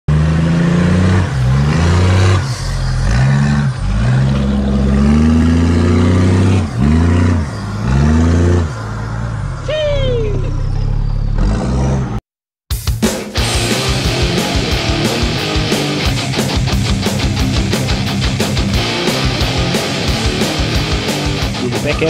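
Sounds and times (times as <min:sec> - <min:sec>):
off-road vehicle engine revving: 0:00.1 - 0:12.2, 0:13.4 - 0:22.0.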